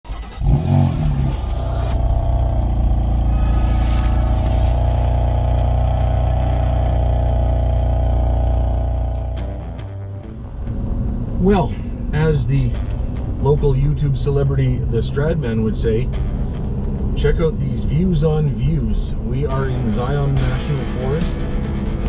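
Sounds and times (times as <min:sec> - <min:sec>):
car engine revving: 0:00.1 - 0:11.4
loud steady engine drone: 0:00.4 - 0:10.0
music: 0:03.2 - 0:22.0.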